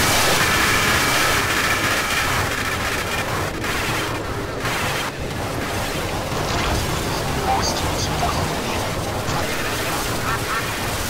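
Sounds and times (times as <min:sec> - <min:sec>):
heavily distorted noise: 0:00.0 - 0:11.0.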